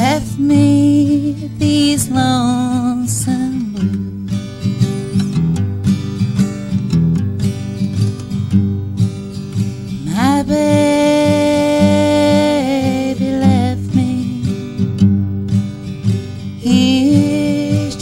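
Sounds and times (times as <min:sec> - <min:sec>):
woman singing: 0:00.0 - 0:04.1, 0:10.0 - 0:15.0, 0:16.6 - 0:18.0
acoustic guitar strumming: 0:00.0 - 0:18.0.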